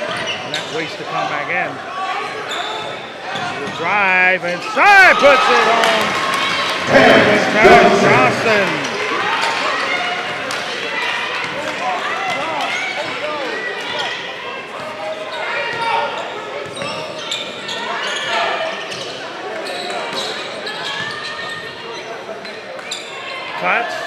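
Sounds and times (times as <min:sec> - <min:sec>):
people calling out: 0:06.9 - 0:09.2.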